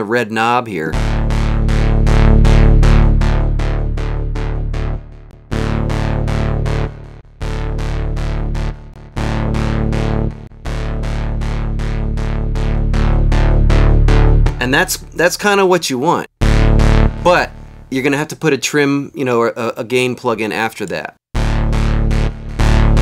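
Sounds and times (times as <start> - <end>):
synthesizer repeated-note pattern: 0.9 - 15.7, 16.4 - 18.3, 21.3 - 23.0
sustained synth bass notes: 0.9 - 18.5, 21.3 - 23.0.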